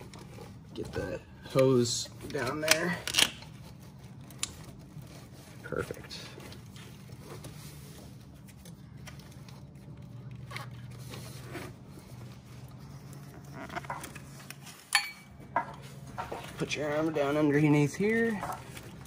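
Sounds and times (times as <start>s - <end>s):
rubbing and scraping against hoses: 0.0s - 19.0s
steady low hum: 0.0s - 19.0s.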